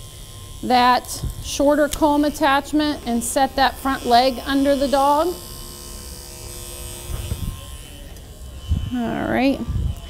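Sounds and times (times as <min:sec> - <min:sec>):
electric clippers humming: 0:00.0 - 0:10.0.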